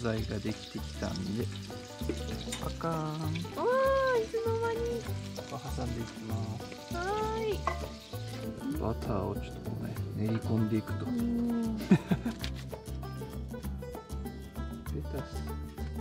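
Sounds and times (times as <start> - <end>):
background music with low beat: 0.0 - 16.0
food sizzling in oil: 0.0 - 16.0.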